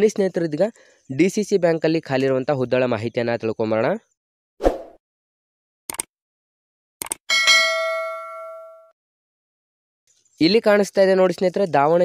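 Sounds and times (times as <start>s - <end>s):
speech: 0.0s - 4.1s, 10.4s - 12.0s.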